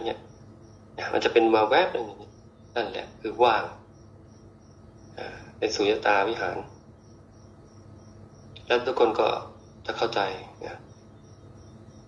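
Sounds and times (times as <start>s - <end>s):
man speaking: 0.0s - 0.3s, 1.0s - 3.8s, 5.2s - 6.7s, 8.6s - 10.9s
cricket chirping: 0.0s - 12.0s.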